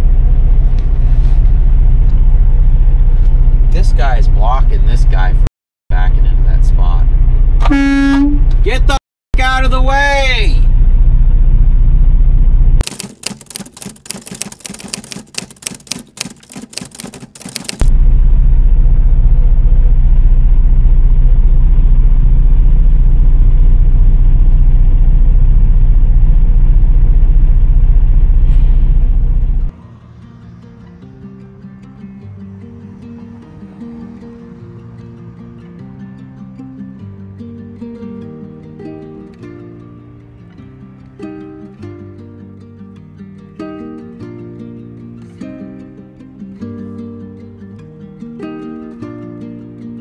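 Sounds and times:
short horn toot: 0:07.6 - 0:08.6.

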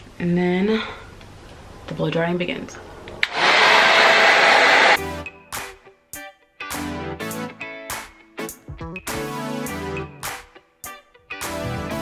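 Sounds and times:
hair dryer blowing air: 0:03.2 - 0:05.0.

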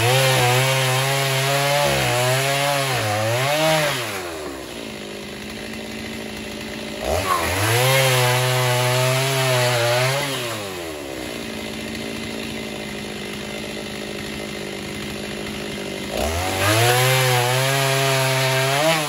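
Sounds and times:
chainsaw cutting wood: 0:00.0 - 0:19.0
chainsaw idling: 0:00.0 - 0:19.0.

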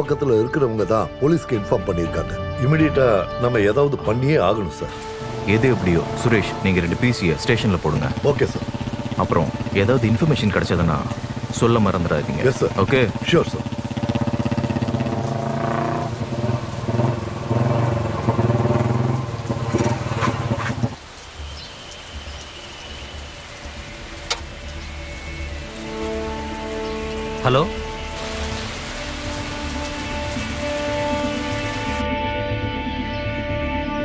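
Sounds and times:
rain: 0:04.9 - 0:32.1
motorcycle engine running: 0:05.0 - 0:21.0
film score of sustained tones: 0:23.2 - 0:34.0.

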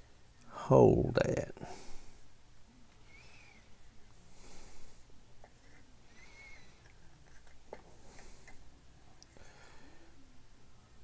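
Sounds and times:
man breathing through nose: 0:01.6 - 0:02.3, 0:04.3 - 0:05.1.

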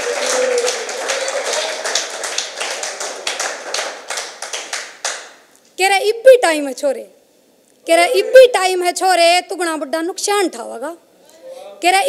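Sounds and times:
people cheering: 0:00.0 - 0:04.8
small audience clapping: 0:00.0 - 0:05.5.

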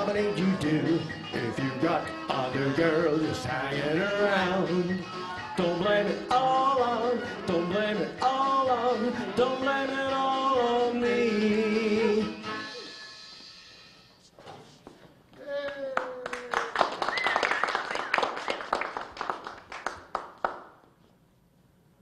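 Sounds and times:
square dance singing call: 0:00.0 - 0:12.5
people clapping: 0:15.5 - 0:20.8.

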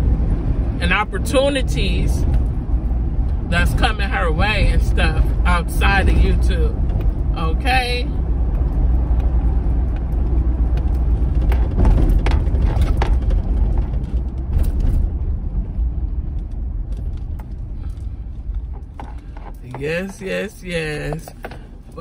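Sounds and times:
car engine and road noise: 0:00.0 - 0:22.0.

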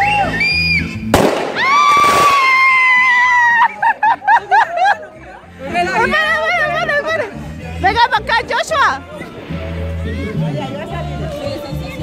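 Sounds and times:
shrill firework whistle: 0:00.0 - 0:03.4
firework burst: 0:01.1 - 0:03.0.

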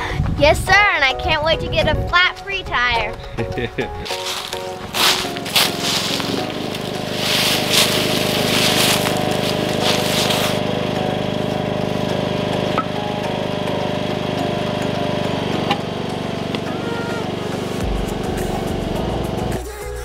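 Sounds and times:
leaves rustling: 0:04.0 - 0:10.7
lawn tractor engine running: 0:04.1 - 0:19.6.

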